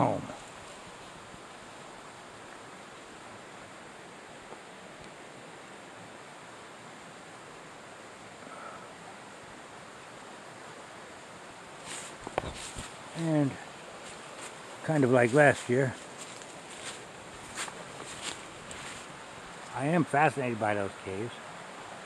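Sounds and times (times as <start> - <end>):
woodland background hiss: 0.0 - 22.0.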